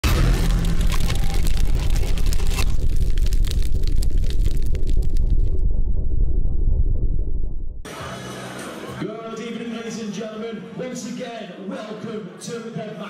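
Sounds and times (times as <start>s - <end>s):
heavy steady bass: 0.0s - 7.9s.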